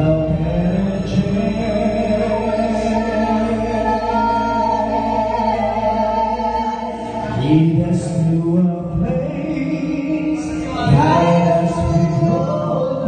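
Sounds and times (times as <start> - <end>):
musical accompaniment: 0.0 - 13.0
two singers singing: 0.0 - 13.0.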